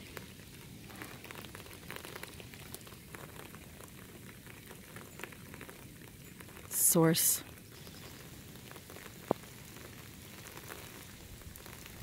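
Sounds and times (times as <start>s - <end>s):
light rain pattering: 0.0s - 12.0s.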